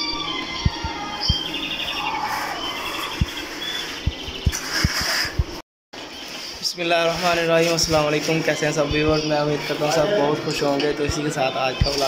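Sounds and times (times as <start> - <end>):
birds chirping in trills: 0.0 - 12.0
steady low hum: 0.0 - 12.0.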